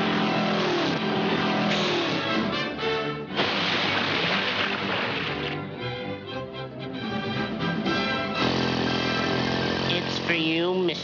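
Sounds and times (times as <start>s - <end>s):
orchestral music: 1.2s - 9.4s
cartoon vehicle engine running: 7.1s - 11.0s.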